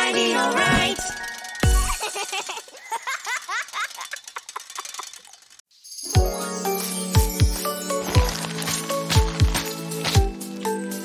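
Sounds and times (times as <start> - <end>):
bicycle freewheel ticking: 1.0 - 5.6.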